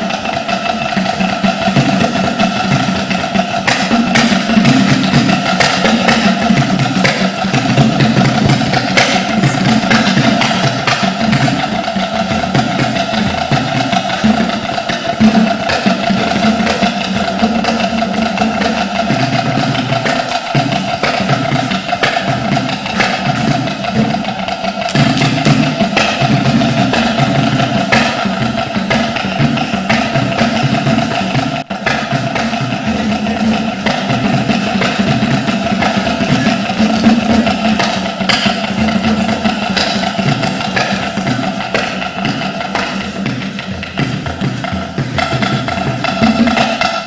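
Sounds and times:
dance music with drums: 0.0 - 47.0
wooden knocking percussion: 0.0 - 47.0.

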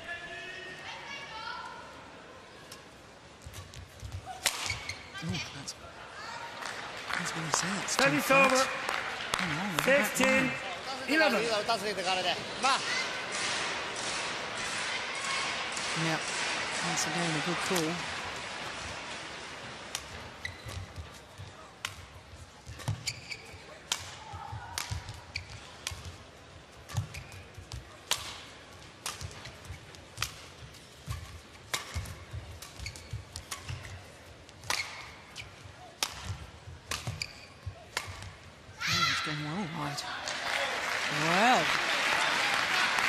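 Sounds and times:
racket striking shuttlecock: 4.4 - 4.9, 23.9 - 26.2, 26.8 - 29.5, 31.1 - 34.0, 34.6 - 38.4.

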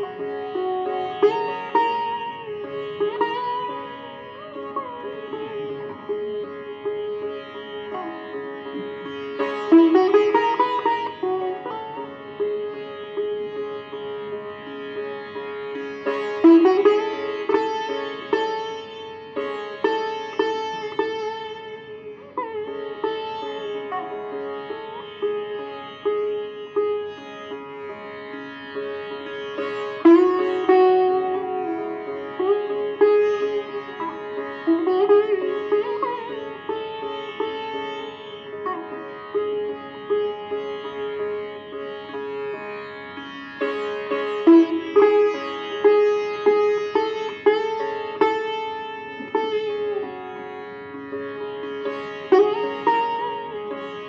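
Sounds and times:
sitar plucked notes: 0.0 - 54.0.

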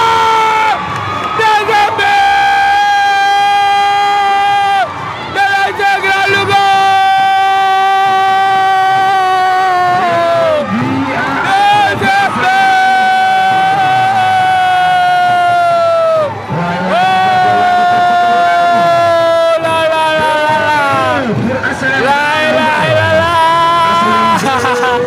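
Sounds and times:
commentator's long held cries: 0.0 - 21.3, 22.0 - 25.0
crowd cheering: 0.0 - 25.0.

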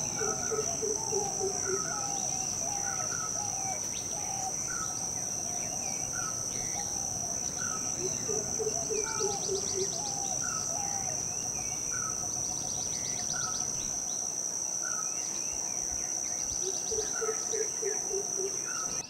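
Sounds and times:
high-pitched insect drone: 0.0 - 19.0.

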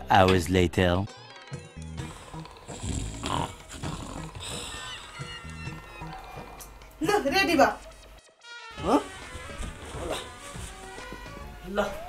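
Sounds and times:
soft background music: 0.0 - 12.0
man snoring: 2.0 - 5.8.

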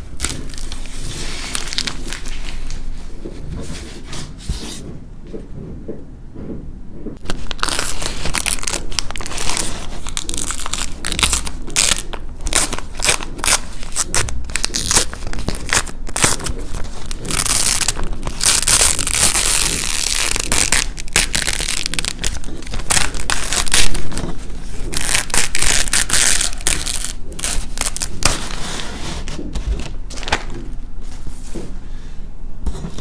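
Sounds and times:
plastic sheet crinkling: 0.0 - 3.0, 7.2 - 31.5.

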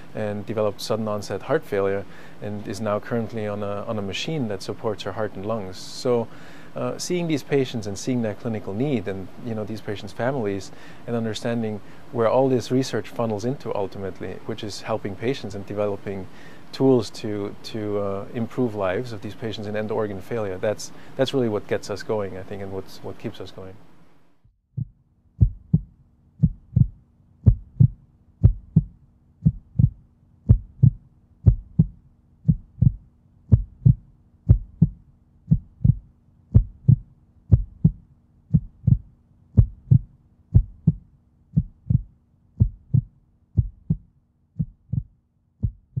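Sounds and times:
faint steady hum: 0.0 - 24.5, 25.2 - 46.0
heartbeat thumps: 24.7 - 46.0.

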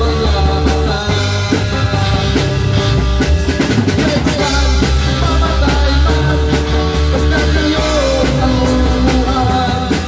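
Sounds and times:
bass drum and snare: 0.0 - 10.0
rock band playing live: 0.0 - 10.0.

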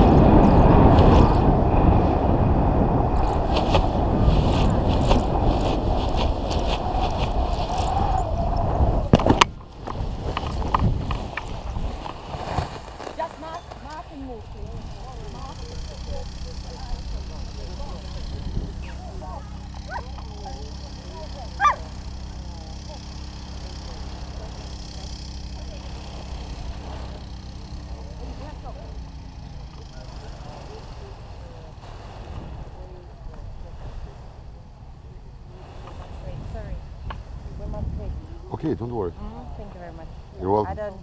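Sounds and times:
distant indistinct voices: 0.0 - 41.0
steady low rumble: 0.0 - 41.0.

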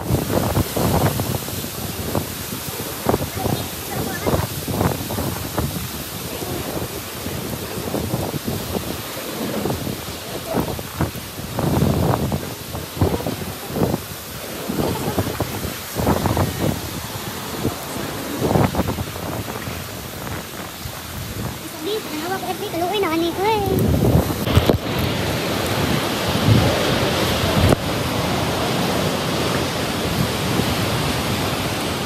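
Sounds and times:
steady hiss: 0.0 - 32.0
wind buffeting microphone: 0.0 - 32.0.

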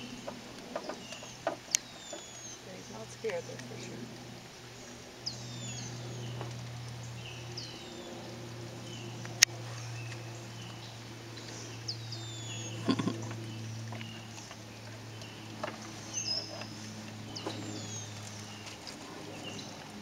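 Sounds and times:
birds whistling: 0.0 - 3.6, 4.8 - 14.5, 15.1 - 18.8
steady low hum: 0.0 - 20.0.

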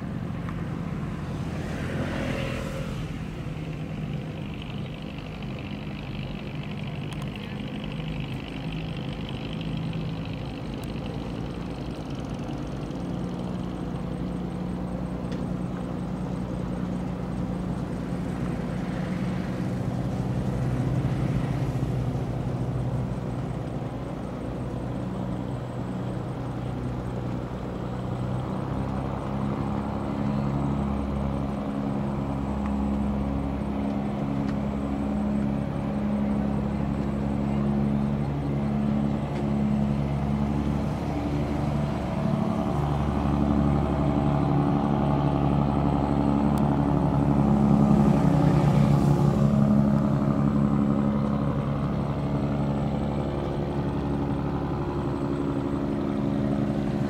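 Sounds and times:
boat engine droning: 0.0 - 57.0.

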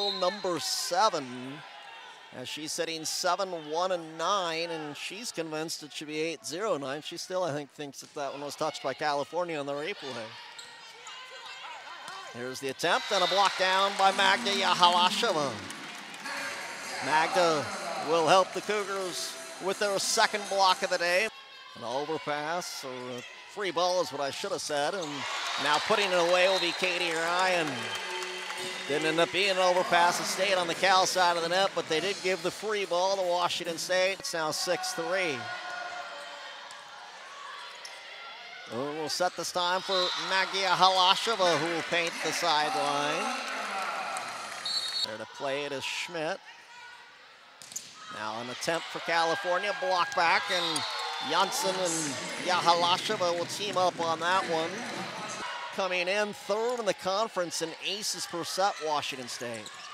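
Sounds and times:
gym background noise: 7.9 - 47.2, 47.9 - 59.9
crowd murmur: 51.3 - 55.7.

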